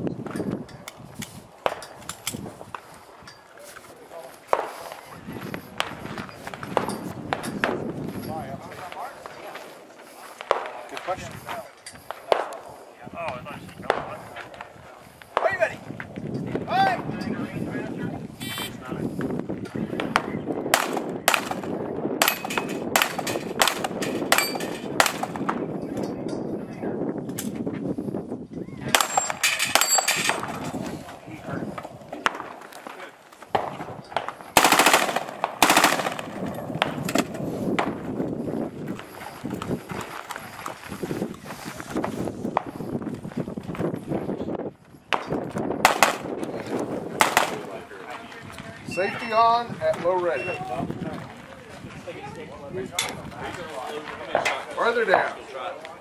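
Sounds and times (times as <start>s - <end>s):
rapid semi-automatic gunfire: 20.8s - 25.4s, 34.6s - 37.2s, 45.9s - 46.3s, 47.2s - 47.7s.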